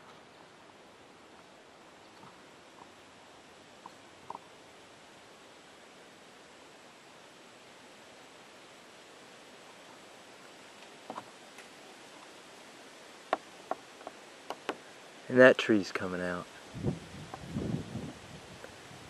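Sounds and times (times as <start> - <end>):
faint steady hiss: 0.0 - 19.0.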